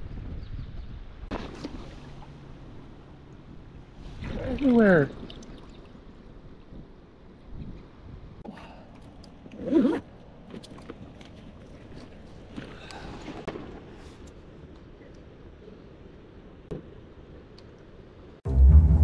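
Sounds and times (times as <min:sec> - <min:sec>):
wind on microphone: 0:00.0 - 0:01.3, 0:06.3 - 0:08.4
water swishing: 0:01.3 - 0:06.8.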